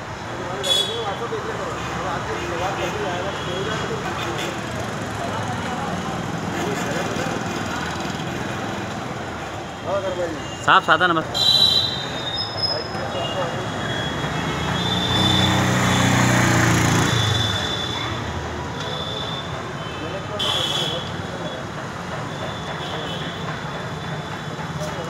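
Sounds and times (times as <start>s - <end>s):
street traffic noise: 0.0s - 25.0s.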